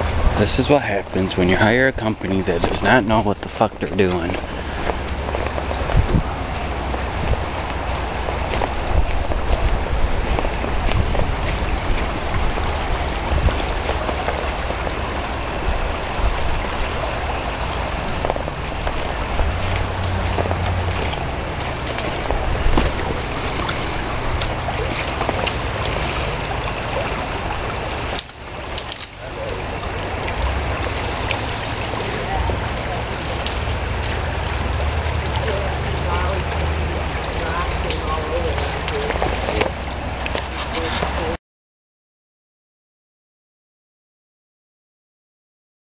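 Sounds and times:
low fluttering microphone rumble: 0.0s - 41.3s
fast-flowing river rushing: 0.0s - 41.4s.

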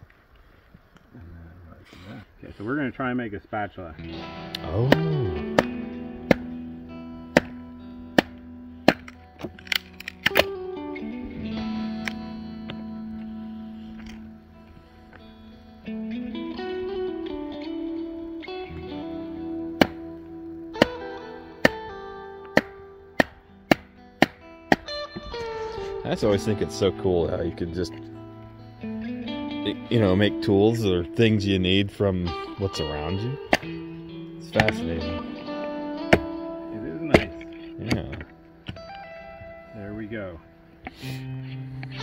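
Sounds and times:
guitar music: 3.6s - 42.0s
baton knocking hatchet into wood: 22.6s - 24.4s.

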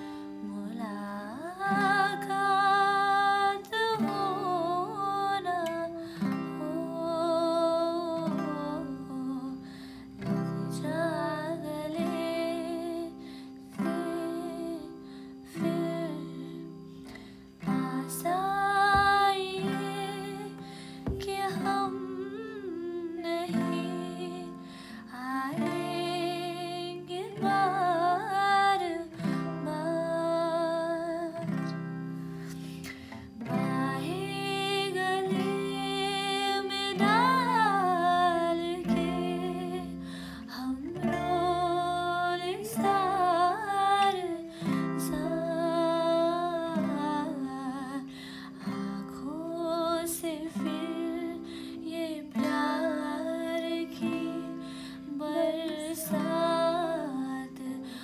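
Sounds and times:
woman singing: 0.0s - 31.9s, 32.5s - 58.0s
acoustic guitar chords: 0.0s - 58.0s.

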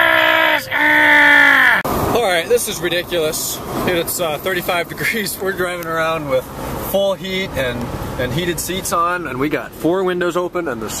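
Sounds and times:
person crying out: 0.0s - 1.8s.

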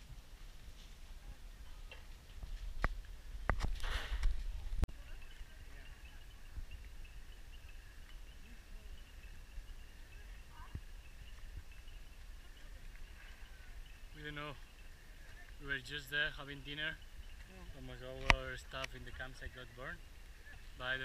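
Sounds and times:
fire cracking: 0.0s - 21.0s
brief hiss: 3.6s - 4.4s.

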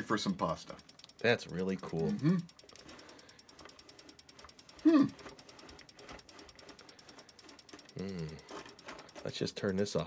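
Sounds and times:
faint rapid ticking: 0.0s - 10.0s
person humming: 2.1s - 2.5s, 4.8s - 5.3s, 8.0s - 8.5s.

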